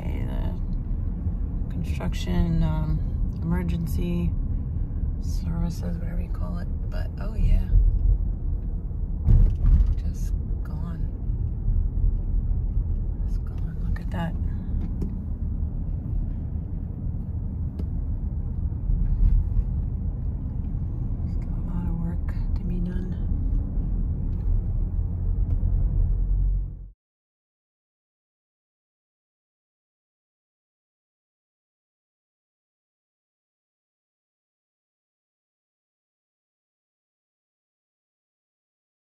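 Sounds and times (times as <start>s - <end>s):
car cabin road rumble: 0.0s - 27.0s.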